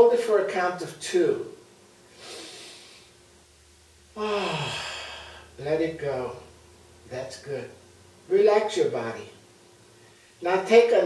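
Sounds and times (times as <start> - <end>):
man inhaling deeply: 2.1 - 3.1, 4.2 - 5.6.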